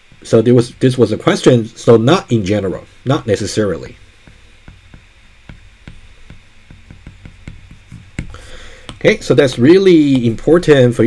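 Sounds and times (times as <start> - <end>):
faint low hum: 0.0 - 11.0
stylus tapping on glass screen: 4.2 - 10.3.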